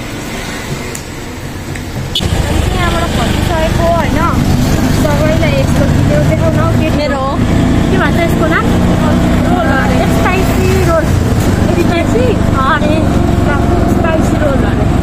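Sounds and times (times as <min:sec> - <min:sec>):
auto-rickshaw engine hum: 0:00.0 - 0:15.0.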